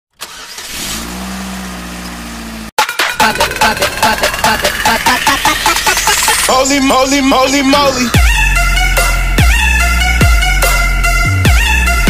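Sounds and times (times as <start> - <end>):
car engine starting and running: 0.1 - 12.0.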